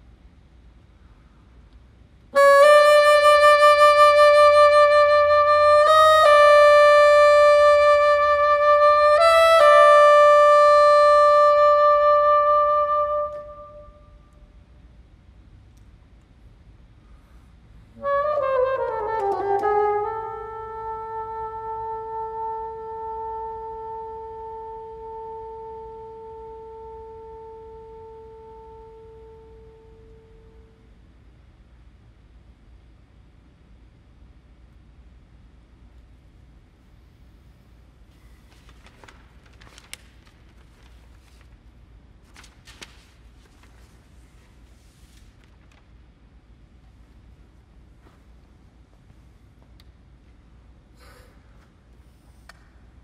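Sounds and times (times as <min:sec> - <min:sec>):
bassoon holding high note: 0:02.4 - 0:14.2, 0:18.0 - 0:30.8.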